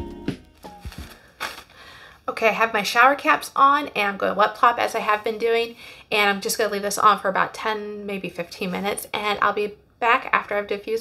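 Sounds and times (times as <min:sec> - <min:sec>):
plucked notes music: 0:00.0 - 0:01.2
crinkling rustle: 0:00.5 - 0:02.0.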